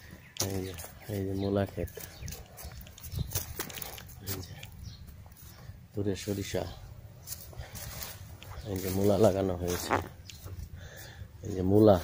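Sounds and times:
footsteps on dry earth: 0.0 - 12.0.

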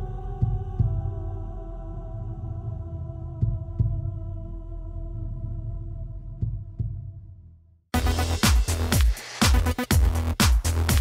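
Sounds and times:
low rumble: 0.0 - 8.4
low heartbeat-like double thump: 6.4 - 7.3.

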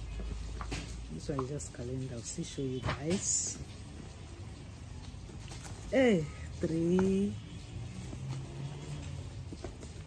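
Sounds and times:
handling of photo albums: 5.1 - 10.0.

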